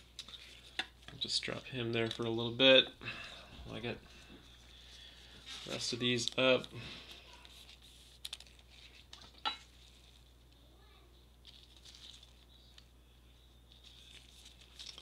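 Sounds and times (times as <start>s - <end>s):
plastic card sleeves crinkling: 0.0s - 2.6s, 3.7s - 10.6s, 11.4s - 13.0s, 13.6s - 15.0s.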